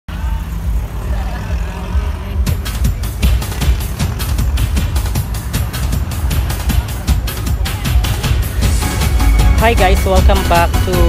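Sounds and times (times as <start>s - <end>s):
faint voices: 0.1s - 8.8s.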